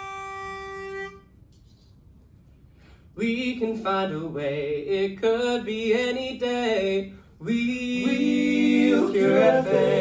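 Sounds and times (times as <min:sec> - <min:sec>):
pitch pipe note: 0:00.0 - 0:01.4.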